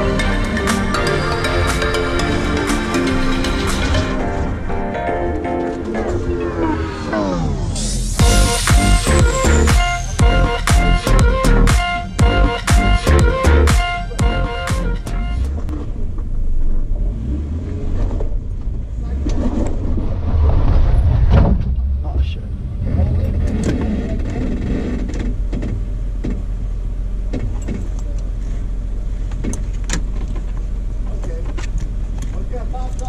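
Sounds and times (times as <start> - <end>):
background music: 0.0 - 15.7
engine rumbling at low speed: 0.0 - 33.0.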